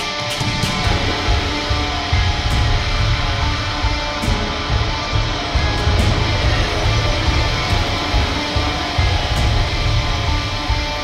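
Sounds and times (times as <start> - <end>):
loud distorted industrial metal music: 0.0 - 11.0.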